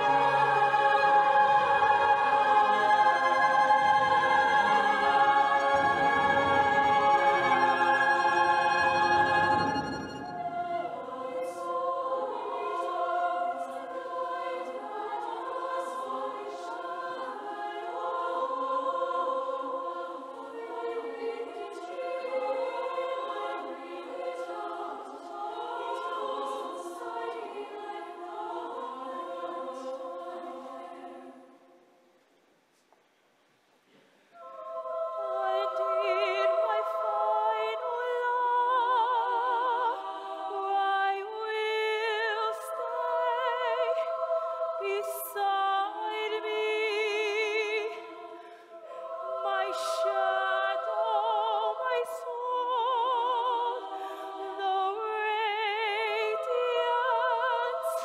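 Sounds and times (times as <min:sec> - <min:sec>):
youth choir singing: 0:00.0 - 0:31.7, 0:34.4 - 0:58.0.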